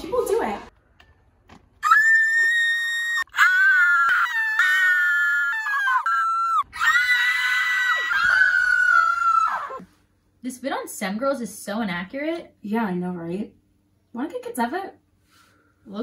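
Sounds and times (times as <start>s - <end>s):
women screaming: 1.8s - 9.8s.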